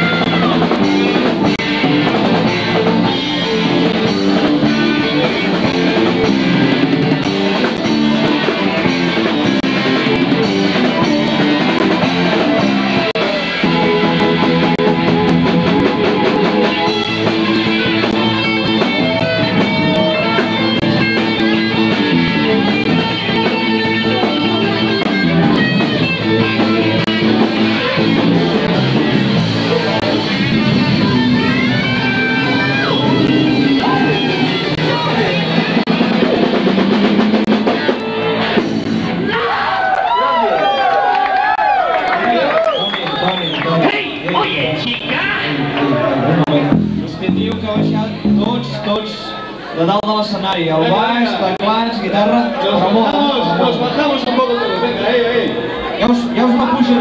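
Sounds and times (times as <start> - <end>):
rock band playing loudly: 0.0 - 57.0
voices talking and calling out: 42.2 - 57.0.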